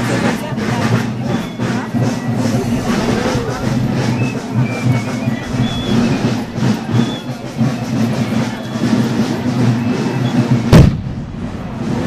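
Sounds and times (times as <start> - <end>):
marching band music: 0.0 - 12.0.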